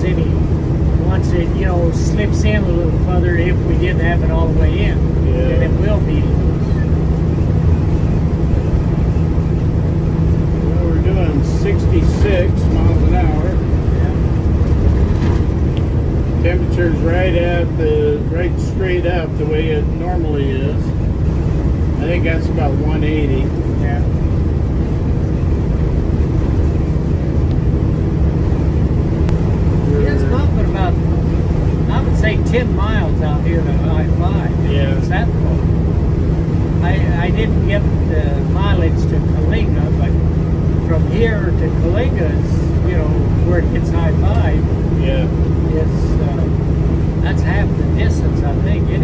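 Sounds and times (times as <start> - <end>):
people talking: 0.0 - 7.0, 10.5 - 14.4, 16.4 - 21.0, 22.0 - 24.2, 29.8 - 35.7, 36.8 - 49.0
bus diesel engine drone: 0.0 - 49.0
road noise: 0.0 - 49.0.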